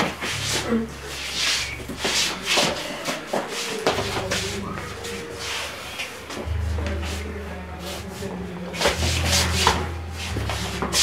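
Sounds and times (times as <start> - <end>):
feet scuffing and scraping: 0.0 - 5.6
steady low hum: 0.0 - 11.0.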